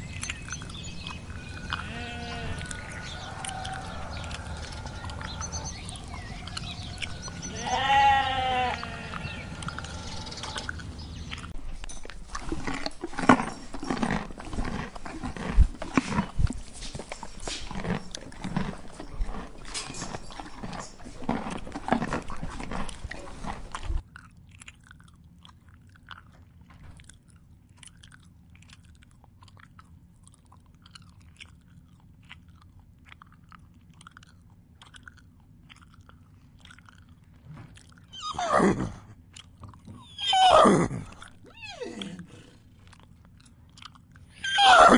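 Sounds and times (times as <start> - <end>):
horses chewing grass: 0.0 - 44.9
sheep bleating: 1.7 - 2.9, 7.4 - 9.6.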